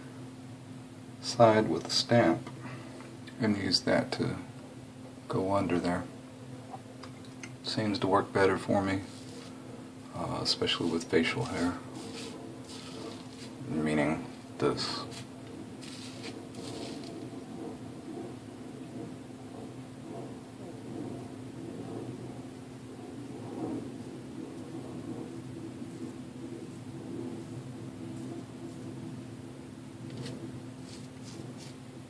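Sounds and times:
steady low hum: 0.0 - 32.0
straight razor scraping stubble: 10.7 - 13.6, 14.8 - 17.2.

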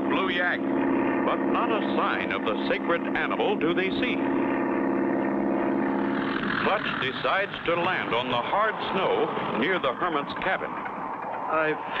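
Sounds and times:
propeller plane engine drone: 0.0 - 12.0.

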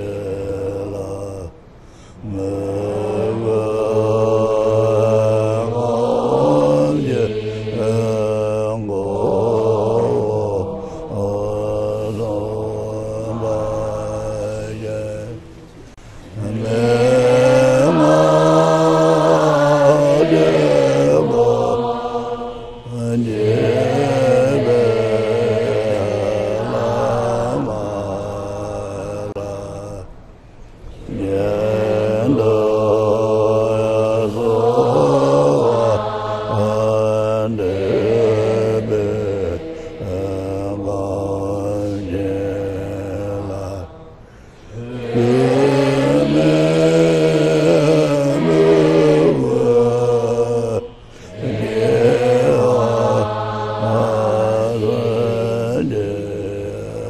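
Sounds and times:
slow melodic prayer chanting: 0.0 - 57.0.

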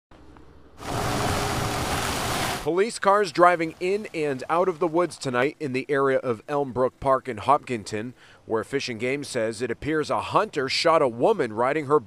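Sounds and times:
car tyres and engine rushing: 0.1 - 2.7
faint hiss: 0.8 - 11.8.

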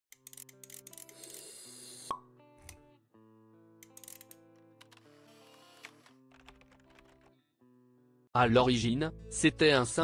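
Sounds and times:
background music of held notes: 2.2 - 10.0.

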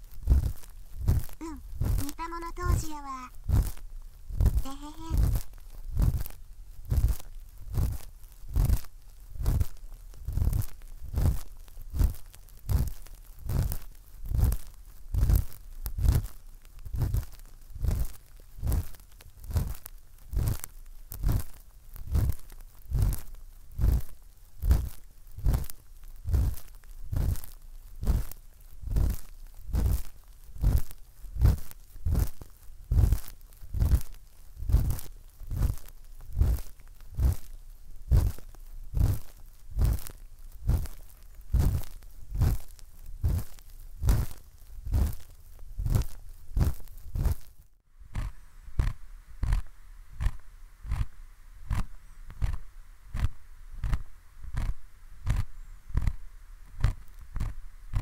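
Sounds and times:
hand stroking microphone: 0.1 - 16.3, 16.9 - 18.9, 19.5 - 20.6, 22.1 - 27.4, 28.0 - 47.5, 48.1 - 58.0.

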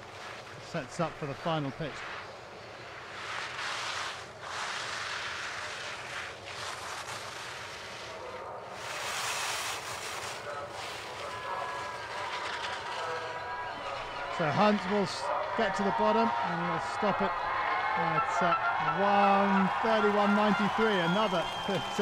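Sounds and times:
skis carving swishes on snow: 0.0 - 17.5, 19.1 - 22.0
faint steady tones: 8.1 - 22.0.

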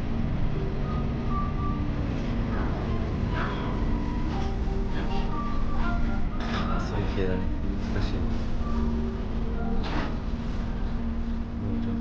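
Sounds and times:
low room noise rumble: 0.0 - 12.0.

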